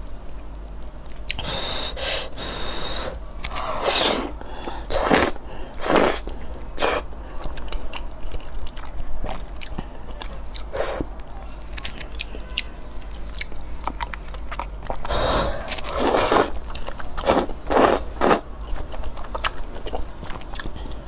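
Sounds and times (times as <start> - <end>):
slurping noodles: 1.4 - 7.0, 15.1 - 16.6, 17.2 - 18.4
wet chewing: 3.4 - 11.0, 11.7 - 21.0.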